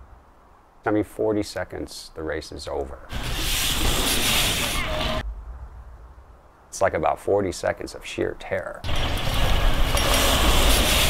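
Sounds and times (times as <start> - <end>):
bmx bikes riding past: 3.1 - 5.2, 8.9 - 11.0
faint low rumble: 5.0 - 8.1.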